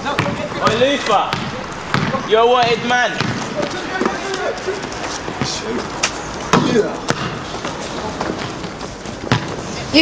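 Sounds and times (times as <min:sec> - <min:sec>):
basketball bouncing on hard ground: 0:00.0 - 0:04.5, 0:05.2 - 0:05.7, 0:06.4 - 0:09.7
players' voices: 0:00.0 - 0:10.0.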